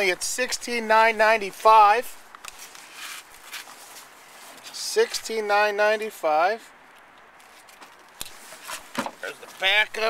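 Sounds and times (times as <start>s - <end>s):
faint handling noise: 2.2s - 5.2s.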